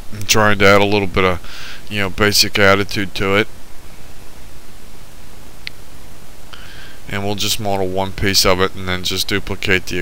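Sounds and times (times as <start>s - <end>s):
microphone hiss and hum: 0.0s - 10.0s.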